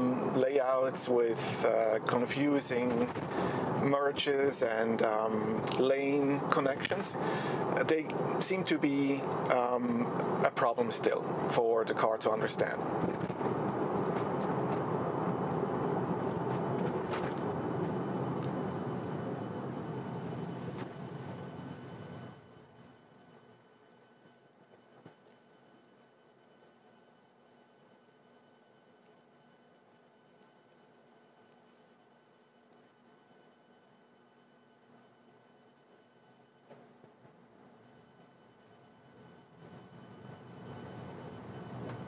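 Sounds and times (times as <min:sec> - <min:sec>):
faint hum: 0:00.0 - 0:42.0
road and tyre noise in car cabin: 0:00.1 - 0:23.0, 0:39.1 - 0:42.0.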